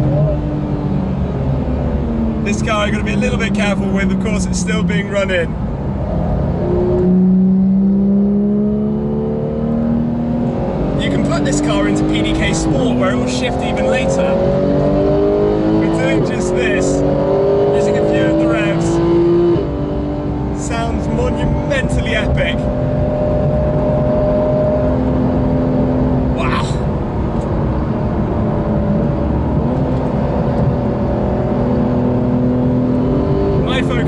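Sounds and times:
car engine accelerating hard: 0.0s - 34.0s.

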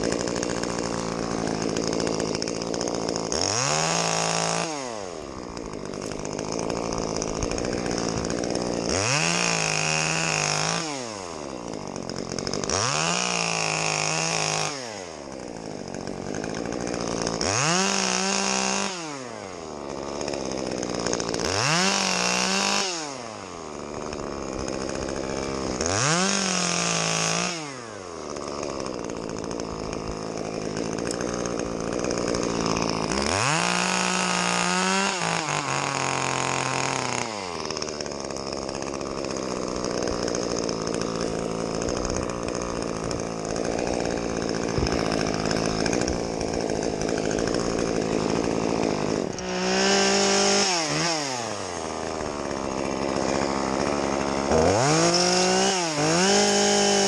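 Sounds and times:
chainsaw revving: 0.0s - 57.0s.

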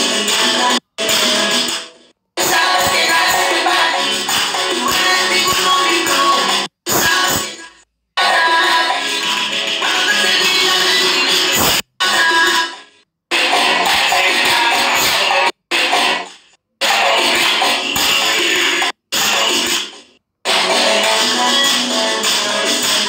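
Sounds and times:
dance music: 0.0s - 23.0s.

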